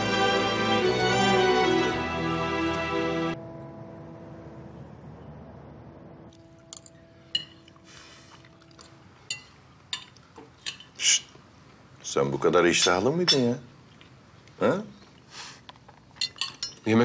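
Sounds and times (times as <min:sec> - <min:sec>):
cutlery clinking on plates: 0:06.7 - 0:07.8, 0:08.8 - 0:11.2, 0:16.2 - 0:16.9.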